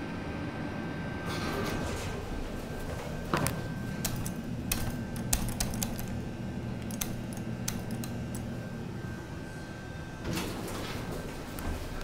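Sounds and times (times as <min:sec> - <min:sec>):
elevator car humming: 0:00.0 - 0:12.0
elevator doors sliding open: 0:10.1 - 0:12.0.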